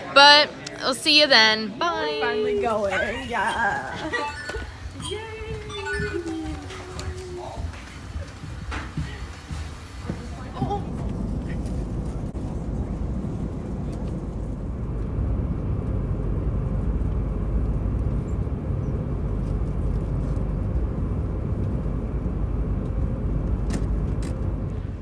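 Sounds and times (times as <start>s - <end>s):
airliner cabin engine drone: 2.6s - 25.0s.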